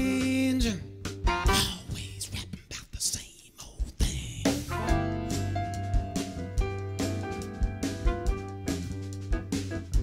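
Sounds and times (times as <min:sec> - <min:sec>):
person whispering into microphone: 0:01.6 - 0:04.7.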